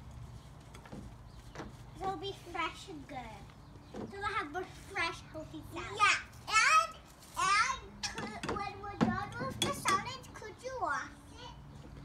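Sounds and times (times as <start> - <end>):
young children talking: 1.9 - 12.0.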